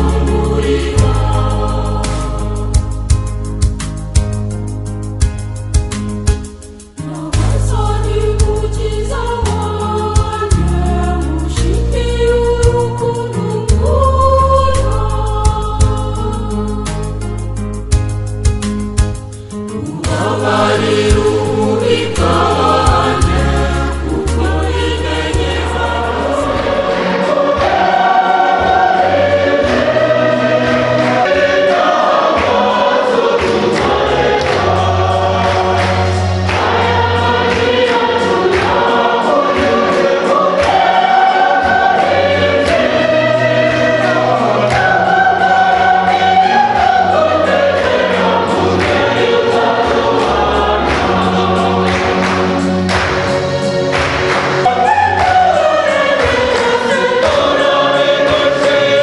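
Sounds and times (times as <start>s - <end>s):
sustained bass notes: 0.0s - 6.2s, 7.5s - 27.8s
choir singing gospel music: 0.0s - 59.0s.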